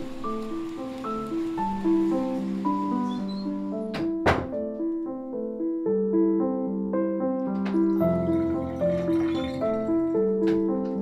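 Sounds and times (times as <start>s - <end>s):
sustained keyboard music: 0.0s - 11.0s
door being shut: 3.1s - 4.6s.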